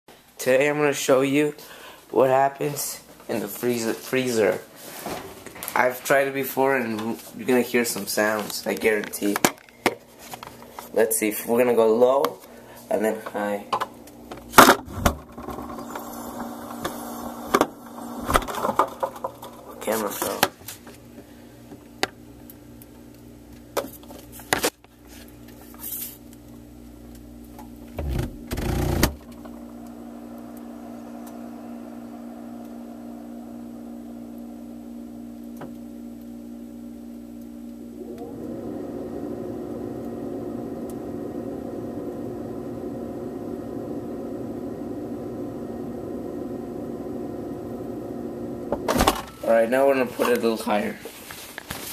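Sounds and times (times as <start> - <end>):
freezer low hum: 0.2 - 51.9
short rising whine: 14.0 - 20.4, 28.0 - 50.5.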